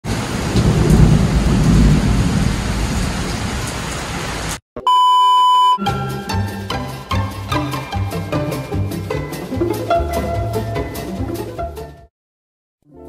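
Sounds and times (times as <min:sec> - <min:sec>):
heavy rain on a street: 0:00.1 - 0:04.6
steady electronic beep: 0:04.8 - 0:05.9
music: 0:05.8 - 0:12.1.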